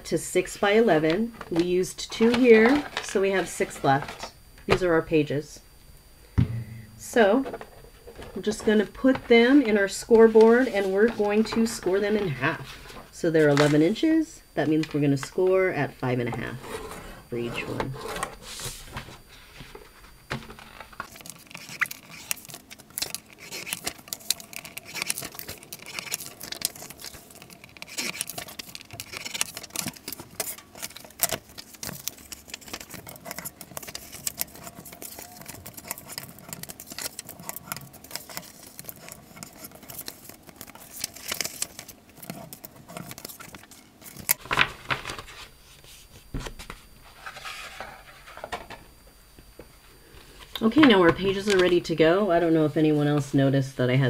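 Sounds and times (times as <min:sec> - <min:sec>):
paper rustling and scraping: 0:01.0 - 0:04.3, 0:10.1 - 0:13.8, 0:16.5 - 0:48.6
bone folder rubbing paper creases: 0:21.0 - 0:44.3.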